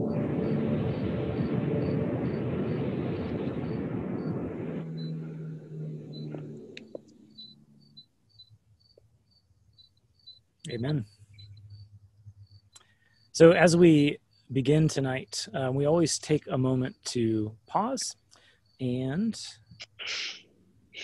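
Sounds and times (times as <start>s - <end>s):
recorded song chord: 0.0s - 6.9s.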